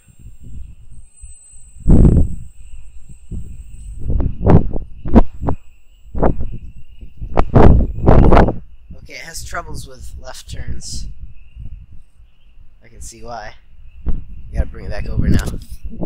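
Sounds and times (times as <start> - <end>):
faint high whine: 0.0 - 16.0
wind buffeting microphone: 0.0 - 16.0.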